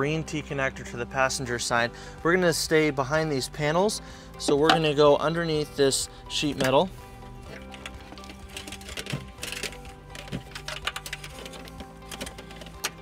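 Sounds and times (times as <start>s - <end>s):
background music: 0.0s - 13.0s
wiring harness clicks and rustles: 7.4s - 13.0s.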